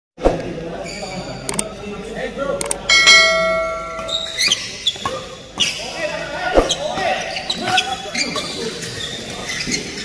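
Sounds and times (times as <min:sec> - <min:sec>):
short clicks: 0:01.5 - 0:01.7
bell ding: 0:02.9 - 0:04.4.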